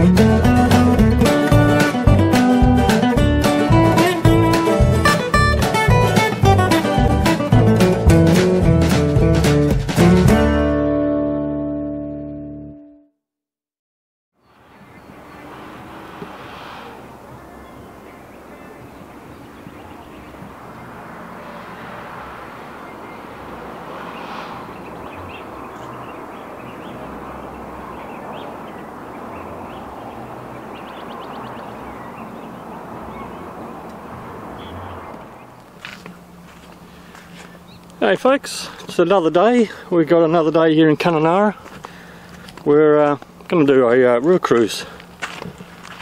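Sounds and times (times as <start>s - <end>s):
bird chirps: 14.4s - 15.6s, 24.0s - 33.5s, 34.6s - 36.2s
steady rushing noise: 14.7s - 18.5s, 20.1s - 28.2s
bird trill: 24.1s - 33.5s.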